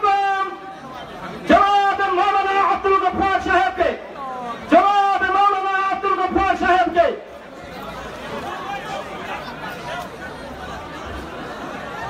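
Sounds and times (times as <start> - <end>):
low chatter of voices: 7.3 - 12.0.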